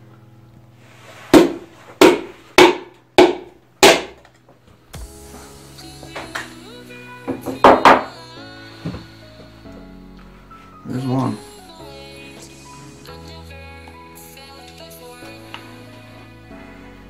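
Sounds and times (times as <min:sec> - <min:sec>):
background music: 0:00.0 - 0:17.0.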